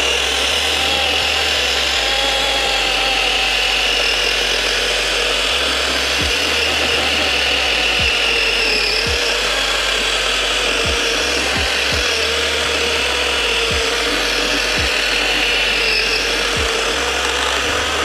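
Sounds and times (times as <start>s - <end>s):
electric chainsaw cutting wood: 0.0s - 18.0s.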